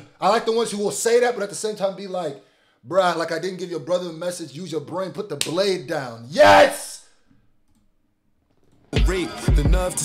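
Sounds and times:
man rapping over music: 0:09.0 - 0:10.0.

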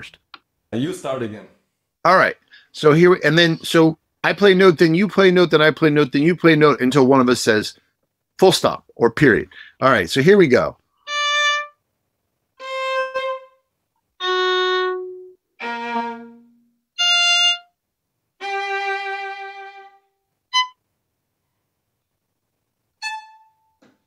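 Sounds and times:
violins playing bowed notes: 0:12.6 - 0:13.6, 0:14.2 - 0:17.6, 0:18.4 - 0:20.7.

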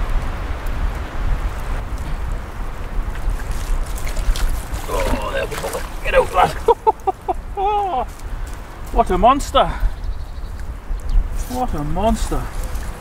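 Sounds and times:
wind rumble on microphone: 0:00.0 - 0:13.0
water sloshing and splashing: 0:02.7 - 0:07.4, 0:11.6 - 0:13.0
sharp splashy strokes: 0:03.4 - 0:06.7.

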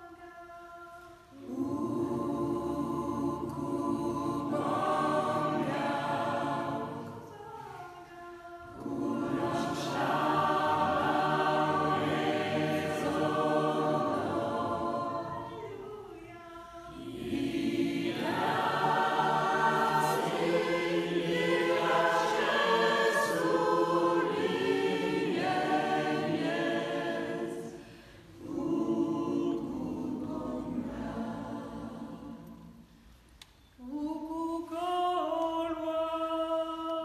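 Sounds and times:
choir singing a cappella: 0:00.0 - 0:33.1, 0:33.8 - 0:37.0.

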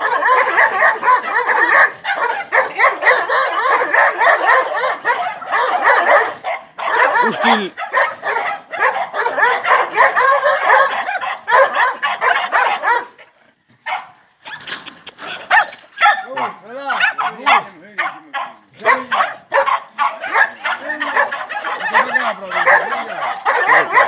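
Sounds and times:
sharp clicks: 0:14.5 - 0:16.0.

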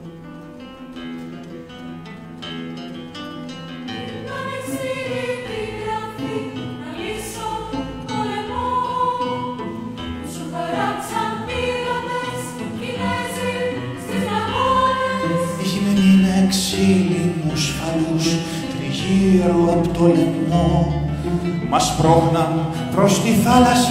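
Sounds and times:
women's choir singing: 0:03.9 - 0:22.2
chamber ensemble playing: 0:04.0 - 0:23.9.

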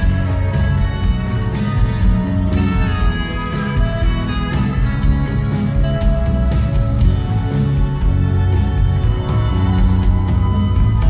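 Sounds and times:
bass guitar: 0:00.0 - 0:11.0
drums: 0:00.0 - 0:11.0
keyboards: 0:00.0 - 0:11.0.

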